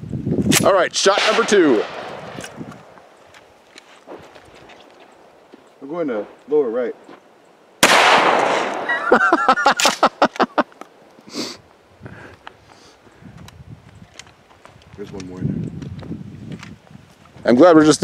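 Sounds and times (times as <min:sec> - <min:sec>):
shotgun blast: 0:01.1 - 0:03.0, 0:07.8 - 0:08.9
man laughing: 0:08.8 - 0:10.8.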